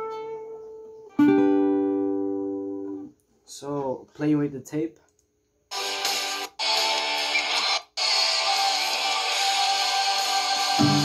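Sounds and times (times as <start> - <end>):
acoustic guitar lead solo: 0.0 - 3.1
backing track music: 5.7 - 11.0.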